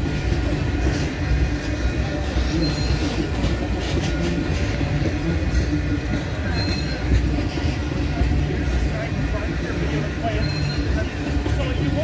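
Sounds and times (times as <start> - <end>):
train wheels rumbling on rail: 0.0 - 12.0.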